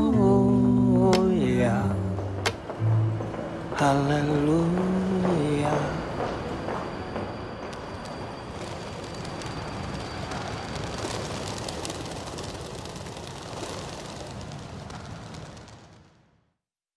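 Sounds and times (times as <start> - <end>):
faint high whine: 0.0 - 15.0
low rumbling noise: 0.0 - 16.4.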